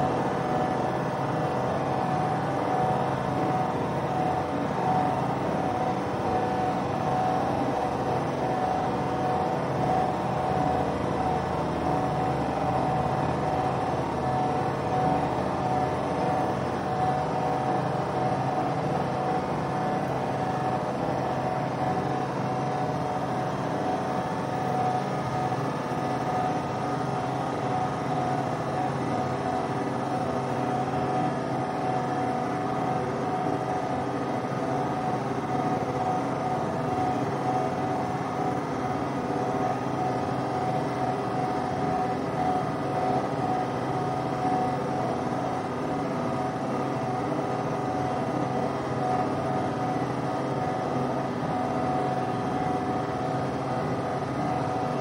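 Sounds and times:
constant hum: 0.0s - 55.0s.

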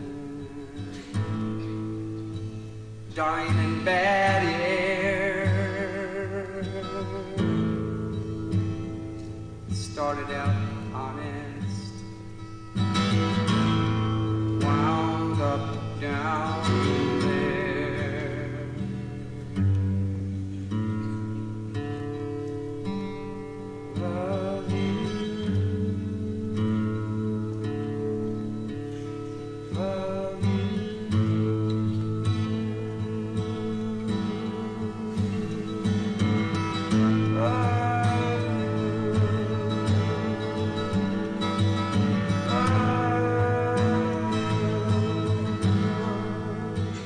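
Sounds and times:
person singing: 0.0s - 1.8s, 3.1s - 8.4s, 9.2s - 12.3s, 13.0s - 19.5s, 23.6s - 47.0s
acoustic guitar chords: 0.0s - 47.0s.

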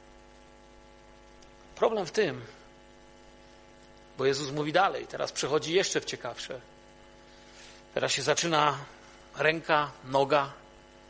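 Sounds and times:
faint electrical mains hum: 0.0s - 11.0s
man speaking: 1.8s - 2.6s, 4.2s - 6.7s, 8.0s - 10.6s.

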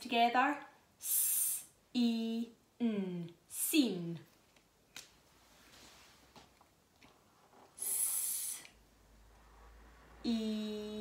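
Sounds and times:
woman saying drawn-out s: 1.0s - 4.2s, 7.8s - 8.8s, 10.2s - 11.0s.

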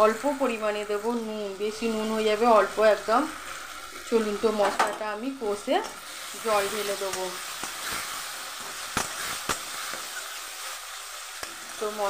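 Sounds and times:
paste sizzling in hot oil: 0.0s - 12.0s.

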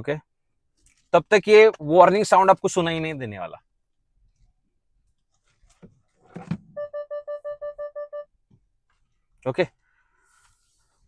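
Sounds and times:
rapid warning chime beeps: 6.8s - 8.3s.

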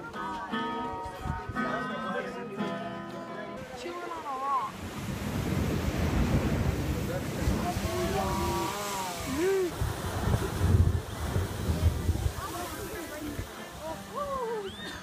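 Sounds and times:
sea surge through blowhole: 4.6s - 14.9s
wind buffeting microphone: 4.7s - 14.6s.

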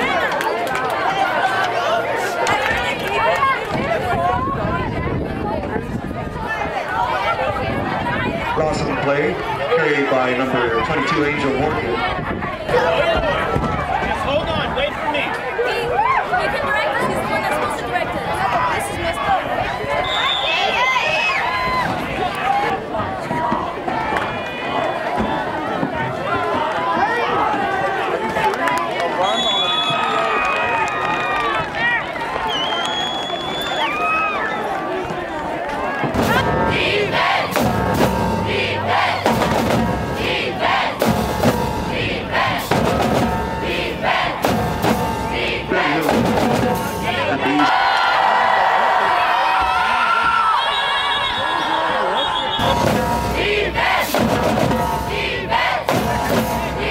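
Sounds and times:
crowd shouting and cheering: 0.0s - 56.9s
bass drum: 36.1s - 47.6s, 52.6s - 56.9s
snare drum: 36.2s - 47.7s, 52.6s - 56.9s.

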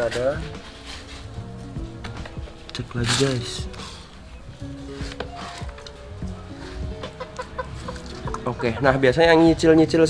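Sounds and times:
chickens clucking: 4.1s - 9.7s.

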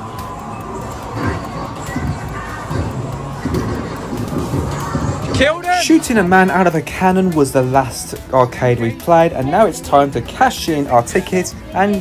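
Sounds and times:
arcade game machine sound effects: 0.0s - 12.0s
arcade hubbub: 0.0s - 12.0s.

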